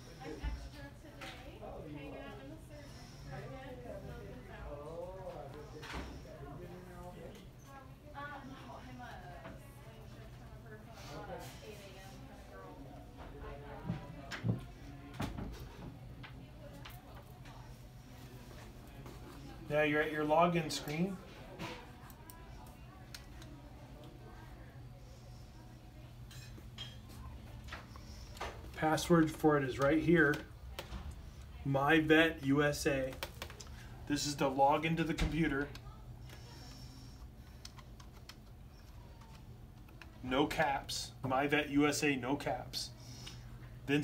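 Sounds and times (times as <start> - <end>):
low steady hum: 0.0 - 44.0.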